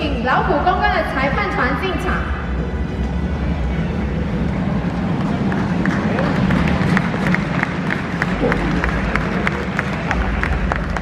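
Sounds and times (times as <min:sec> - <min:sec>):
crowd murmur: 0:03.0 - 0:11.0
scattered hand-clapping: 0:05.1 - 0:11.0.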